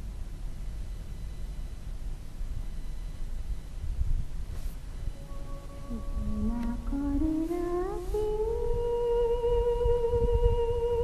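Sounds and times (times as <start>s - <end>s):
high singing voice: 5.2s - 11.0s.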